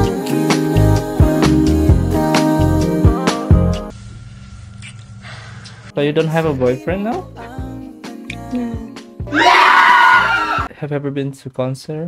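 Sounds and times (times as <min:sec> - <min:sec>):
background music: 0:00.0 - 0:03.9, 0:05.9 - 0:10.7
high-pitched scream: 0:09.3 - 0:10.7.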